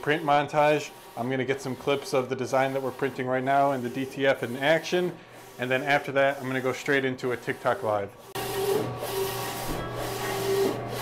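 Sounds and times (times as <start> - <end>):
printer carriage whirring: 0.0 - 11.0.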